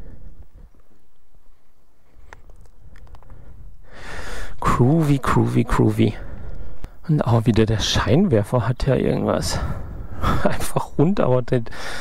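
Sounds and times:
low uneven rumble: 3.3 - 10.8.

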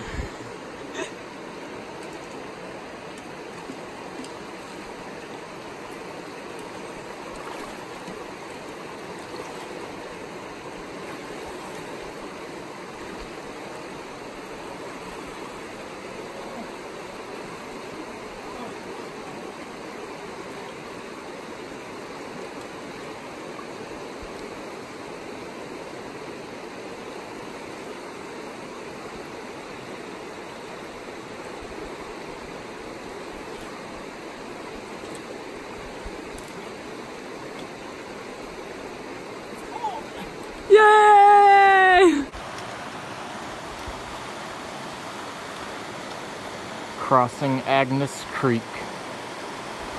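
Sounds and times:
rocky creek flowing: 0.0 - 49.9.

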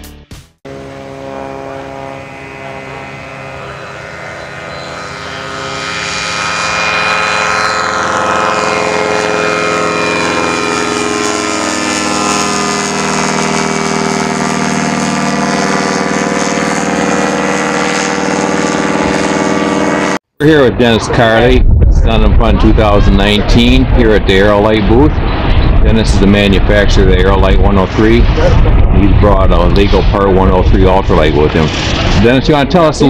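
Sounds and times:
ultralight aircraft engine droning: 0.7 - 33.0.

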